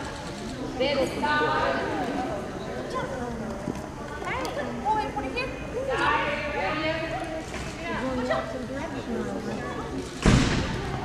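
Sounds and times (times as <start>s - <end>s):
loud thump: 10.2s - 11.0s.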